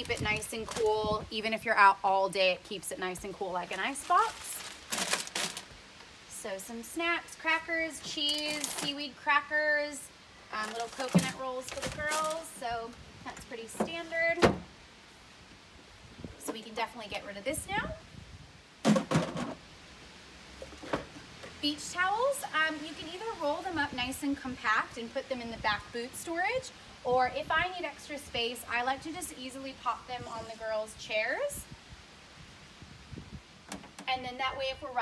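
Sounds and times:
cooler box clunking on deck: 0:18.8 - 0:19.6.

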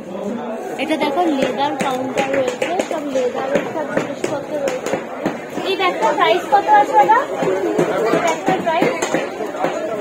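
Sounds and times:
people talking: 0:00.0 - 0:10.0.

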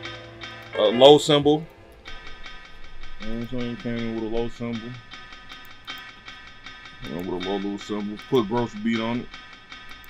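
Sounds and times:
soft cymbal ticks: 0:00.0 - 0:00.8
instrumental beat melody: 0:00.0 - 0:10.0.

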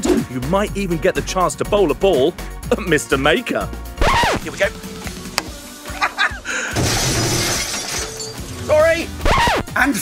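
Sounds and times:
glass smashing: 0:06.7 - 0:08.8.

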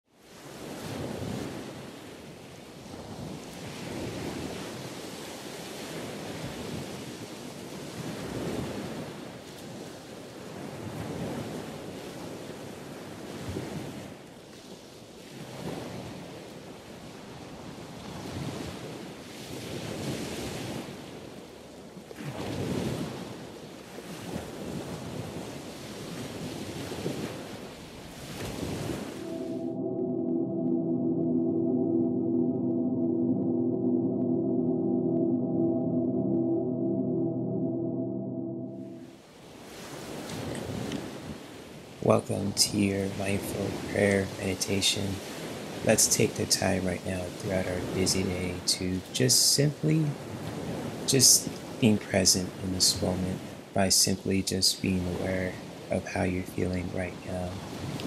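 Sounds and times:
ocean surf washing onto beach: 0:22.2 - 0:34.5, 0:39.2 - 0:58.0.

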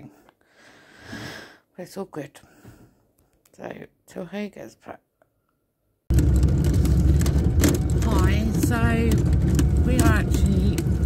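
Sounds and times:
car interior low rumble: 0:06.1 - 0:11.0.

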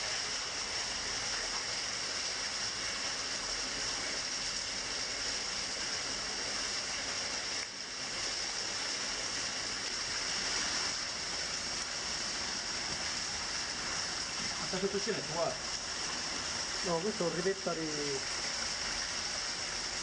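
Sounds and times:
small waterfall splashing: 0:00.0 - 0:20.0.

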